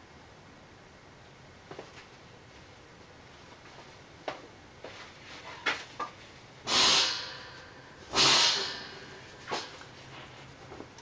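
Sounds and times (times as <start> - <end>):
person breathing: 7.0 - 9.8.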